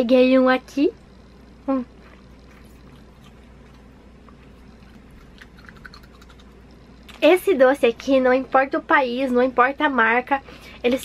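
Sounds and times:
steady low hum: 0:00.0 - 0:11.0
soft chewing of gummy candy: 0:01.9 - 0:07.2
wet mouth clicks: 0:02.8 - 0:06.6.

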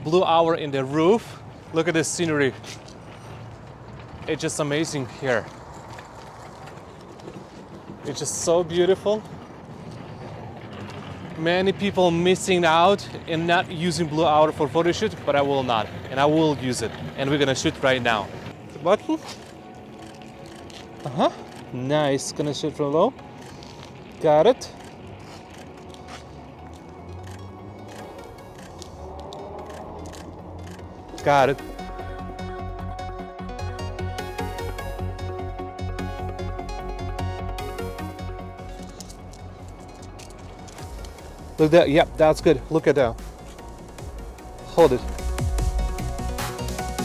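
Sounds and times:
low outdoor rumble: 0:00.0 - 0:33.0, 0:34.2 - 0:47.0
quiet background music with bass: 0:11.3 - 0:47.0.

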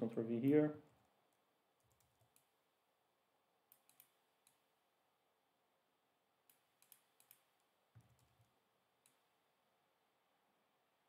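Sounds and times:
computer keyboard and mouse clicks: 0:01.8 - 0:02.6, 0:03.7 - 0:04.6, 0:06.5 - 0:09.3.

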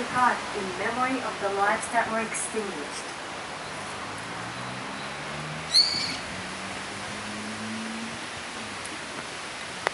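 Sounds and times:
outdoor background noise: 0:00.0 - 0:09.9
bird shrill call: 0:05.7 - 0:06.2.

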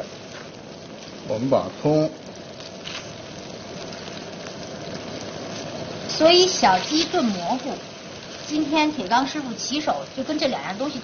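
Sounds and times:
broth boiling in a wok: 0:00.0 - 0:11.0.

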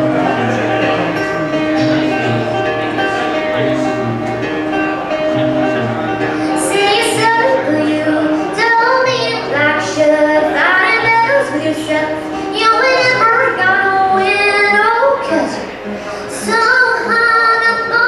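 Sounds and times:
acoustic guitar: 0:00.0 - 0:18.0
woman singing: 0:06.5 - 0:18.0.

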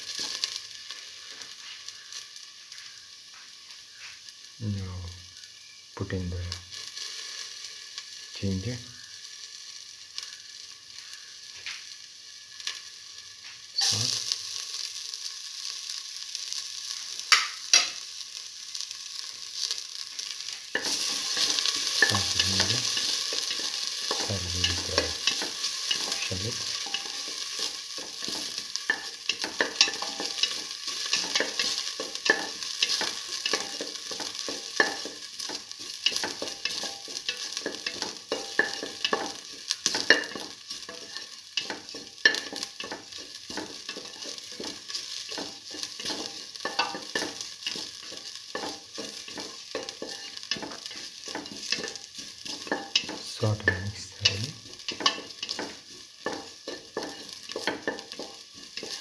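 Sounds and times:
shallots and ginger sizzling in oil: 0:00.0 - 0:59.0
spoon clicking and scraping metal pan: 0:17.3 - 0:18.0, 0:20.5 - 0:59.0.

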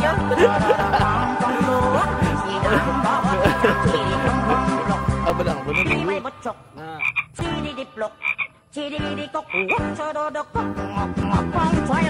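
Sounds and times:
background music: 0:00.0 - 0:12.0
frogs croaking: 0:05.0 - 0:10.0.

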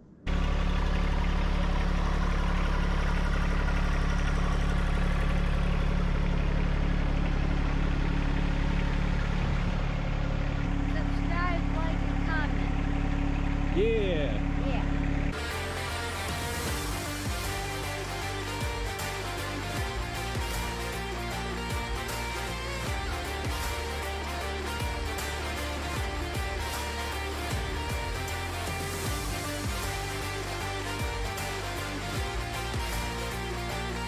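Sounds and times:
tractor diesel engine running: 0:00.0 - 0:34.0.

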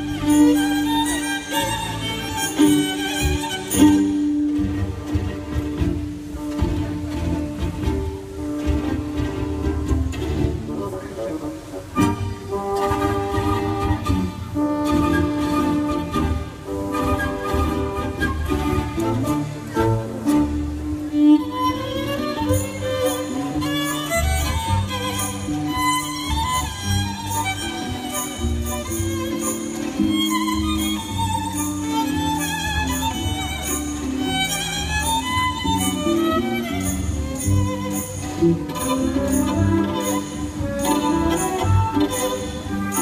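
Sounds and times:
bowed strings sustained notes: 0:00.0 - 0:43.0
symphony orchestra playing: 0:00.0 - 0:43.0.

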